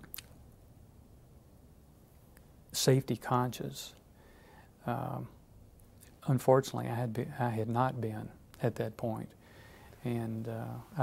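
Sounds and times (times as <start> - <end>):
faint mouth click: 0.0 - 0.4.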